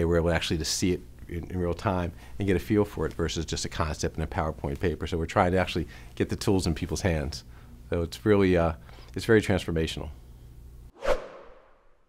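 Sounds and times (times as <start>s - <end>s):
whoosh sound effect: 10.9s - 12.0s.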